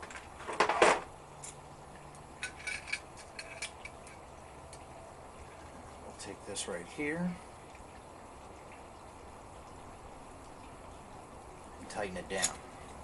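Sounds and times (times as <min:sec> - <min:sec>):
metal tool clinking and clicking: 0:02.4 - 0:04.2.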